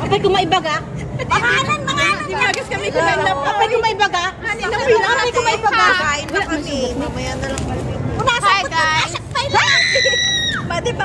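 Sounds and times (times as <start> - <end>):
women talking: 0.0 - 11.0
woman shrieking: 9.5 - 10.7.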